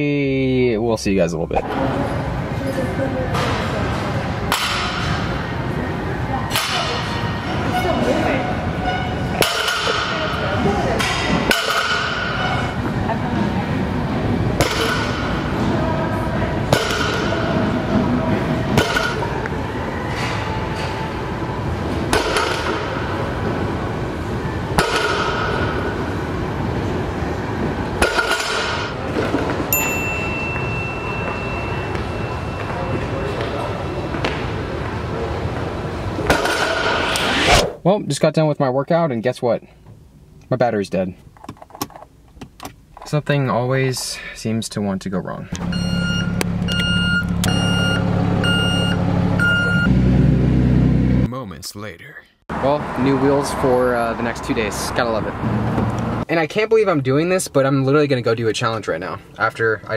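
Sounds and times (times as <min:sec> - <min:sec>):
gym background noise: 0:00.0 - 0:49.9
steady high tone: 0:29.7 - 0:34.1
warning beeper: 0:45.6 - 0:49.9
truck engine running: 0:45.6 - 0:51.3.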